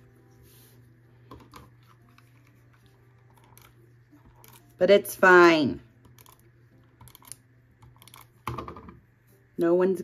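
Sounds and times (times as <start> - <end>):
tape runner crackly clicks: 7.0 - 8.7.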